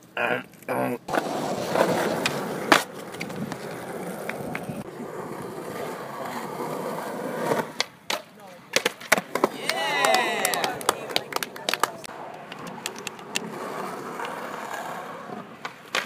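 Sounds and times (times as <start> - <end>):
skateboard wheels rolling on pavement: 1.1 - 16.0
skateboards clacking on ground: 1.1 - 16.0.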